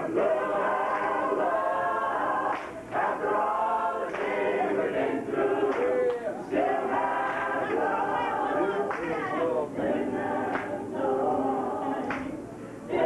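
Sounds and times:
gospel choir singing a cappella: 0.0 - 13.0.

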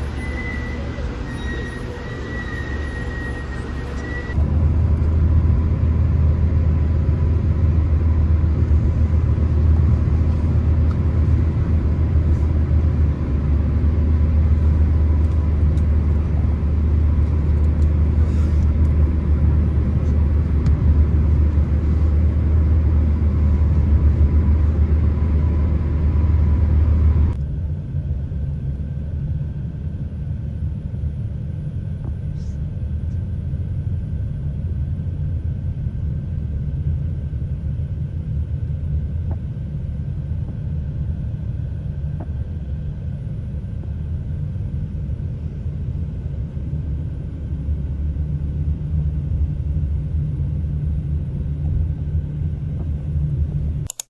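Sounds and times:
vehicle low rumble: 0.0 - 54.0.

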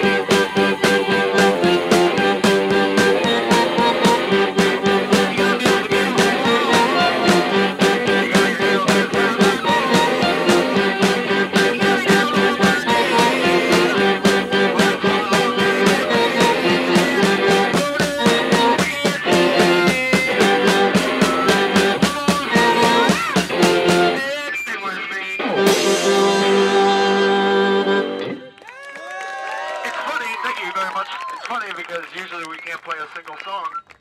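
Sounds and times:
driving drum beat: 0.0 - 24.3, 25.6 - 27.4
distorted electric guitar: 0.0 - 28.6.

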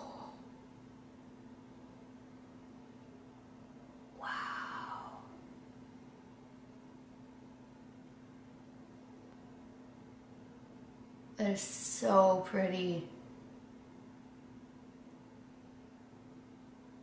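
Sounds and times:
faint low hum: 0.0 - 17.0.

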